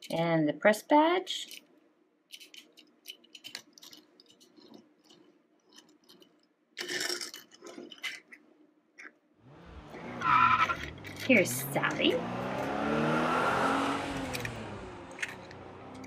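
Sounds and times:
metal toy car rolling on tabletop: 2.3 - 9.2, 10.5 - 12.7, 14.2 - 16.0
toy car clicking in fingers: 14.2 - 16.0.

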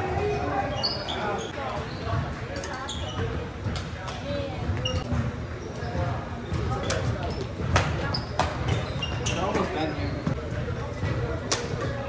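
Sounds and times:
sneakers squeaking on court: 0.2 - 3.8, 4.6 - 12.0.

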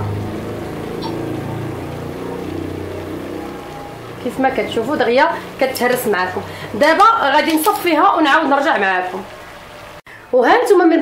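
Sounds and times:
steady low hum: 0.0 - 7.3.

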